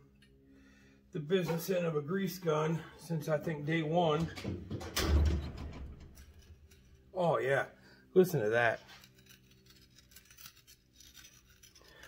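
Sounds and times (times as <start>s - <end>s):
ball joint scraping and clicking: 5.5s - 7.2s, 8.8s - 12.0s.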